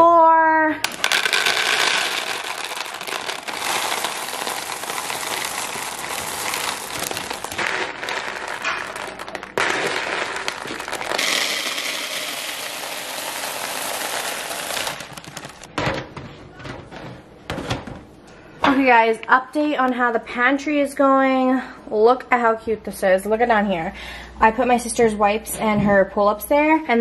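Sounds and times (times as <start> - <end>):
cereal rattling into plastic bins: 0.8 - 16.2
plastic bag crinkling: 0.9 - 15.7.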